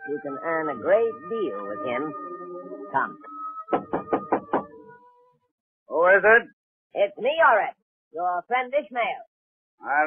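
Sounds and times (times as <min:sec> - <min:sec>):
knocking on a door: 0:03.7 - 0:04.8.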